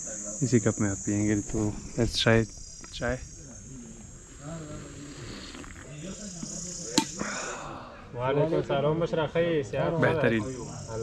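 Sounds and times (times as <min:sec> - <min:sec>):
insects chirring: 0:00.0 - 0:07.9, 0:09.9 - 0:11.0
men talking quietly: 0:00.0 - 0:11.0.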